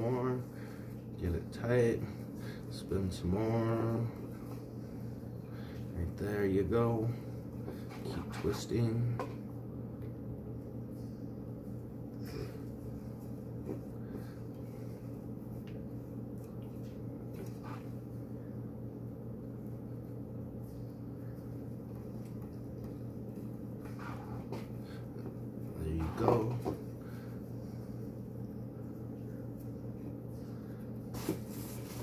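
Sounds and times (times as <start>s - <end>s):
low room hum: 0.0s - 32.0s.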